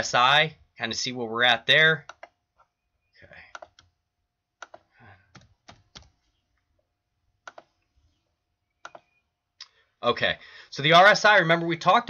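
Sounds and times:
mouse clicks: 2.0 - 2.4, 3.4 - 3.9, 4.6 - 6.2, 7.4 - 7.9, 8.8 - 9.2.

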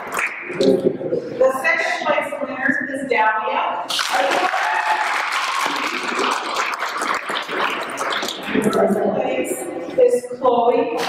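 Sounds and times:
audience applauding: 3.9 - 8.6.

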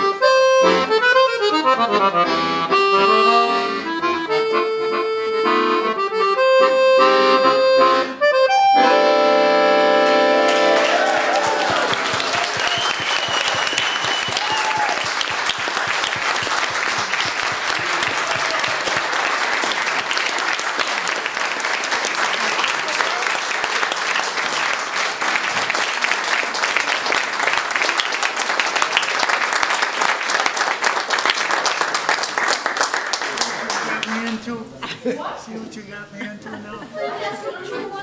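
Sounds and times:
audience applauding: 10.0 - 34.5.

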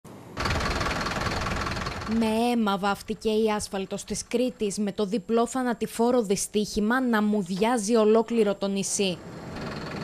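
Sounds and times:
diesel truck engine idling: 0.3 - 4.1, 9.2 - 10.0.

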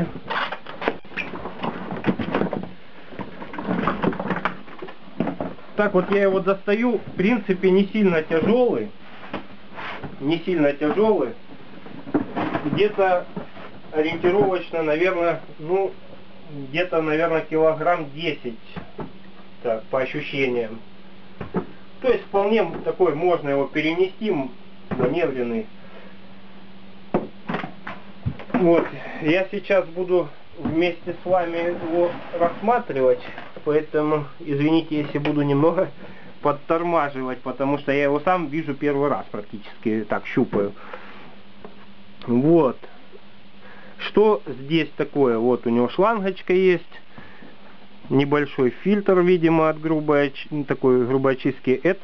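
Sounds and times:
cardboard and foam rustling: 30.6 - 33.2.

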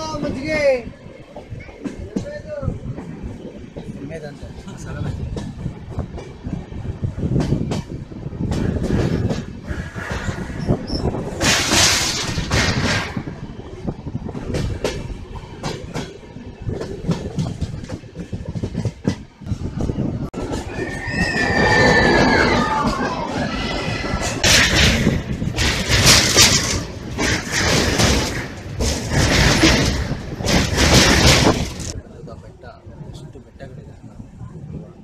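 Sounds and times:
wheels clicking over rail joints: 0.0 - 32.4
train rumble: 0.0 - 35.0
wheels squealing: 6.5 - 15.2, 19.4 - 32.0.

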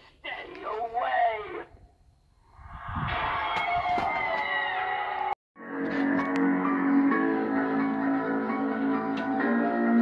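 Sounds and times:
spooky music and shriek: 3.1 - 5.3.

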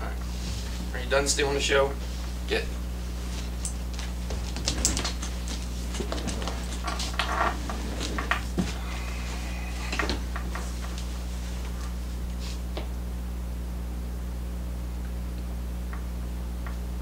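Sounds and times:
steady low hum: 0.0 - 17.0
puppy scrambling and rustling: 2.0 - 12.7.

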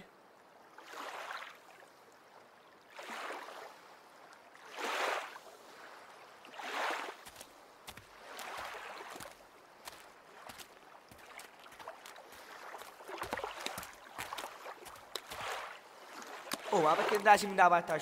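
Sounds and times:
sea water washing against rocks: 6.5 - 18.0.

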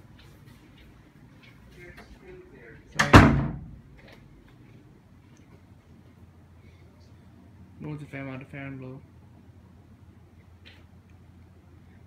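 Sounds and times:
air conditioner fan running: 0.0 - 12.0.

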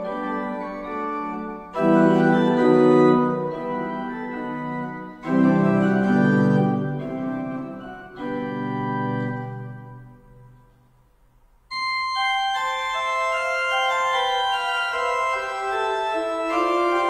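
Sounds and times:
pipe organ chords: 0.0 - 10.8, 11.7 - 17.0.

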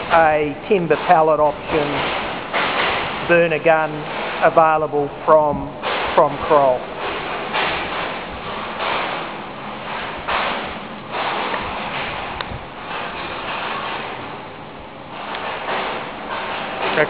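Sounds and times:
boiler rushing noise: 0.0 - 17.0.

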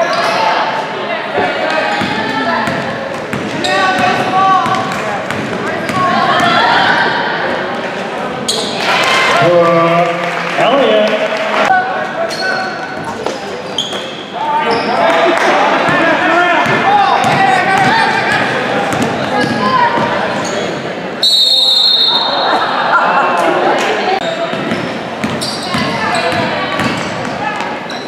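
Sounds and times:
crowd voices echoing: 0.0 - 28.0
loud high whistle blast: 21.2 - 22.5.

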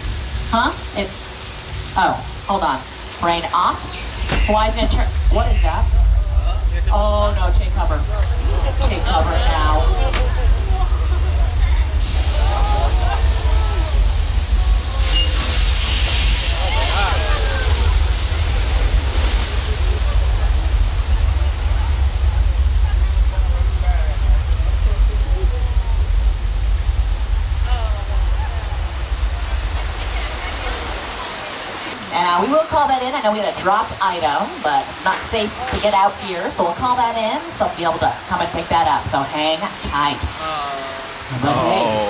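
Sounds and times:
deep rumble: 0.0 - 31.6
water rushing: 0.0 - 42.0
people calling out: 8.4 - 15.5, 16.4 - 18.0, 40.4 - 42.0.

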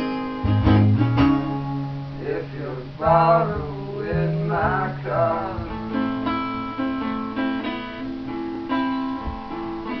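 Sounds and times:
rock guitars playing: 0.0 - 10.0.

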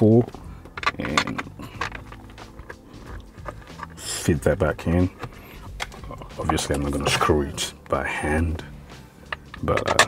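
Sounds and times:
plastic trim clicking and knocking: 0.7 - 4.0, 9.3 - 10.0.

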